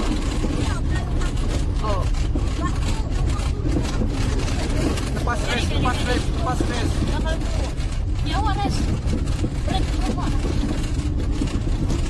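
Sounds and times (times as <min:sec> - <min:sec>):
car driving on dirt road: 0:00.0 - 0:12.0.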